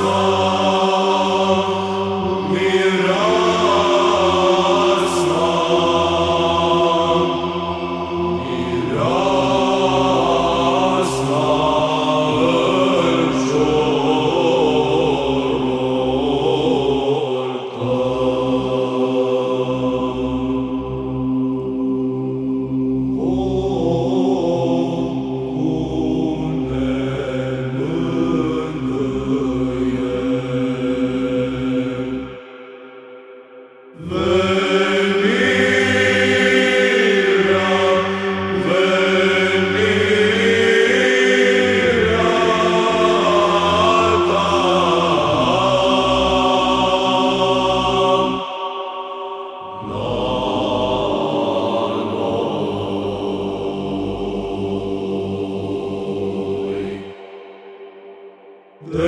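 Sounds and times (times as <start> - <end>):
chant melody: 0.0 - 59.0
held vocal drone: 0.0 - 59.0.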